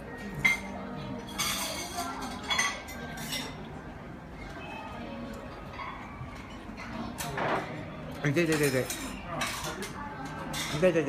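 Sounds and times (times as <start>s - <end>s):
low background chatter: 0.0s - 11.0s
tableware clinking: 0.1s - 3.8s, 4.5s - 11.0s.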